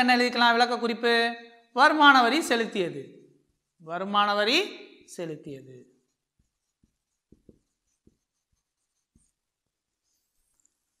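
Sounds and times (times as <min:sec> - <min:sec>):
marker writing on whiteboard: 0:06.0 - 0:11.0.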